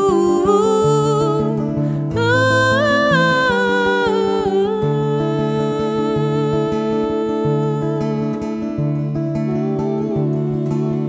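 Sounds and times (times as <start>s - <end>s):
acoustic guitar: 0.0s - 11.0s
woman singing: 0.0s - 11.0s.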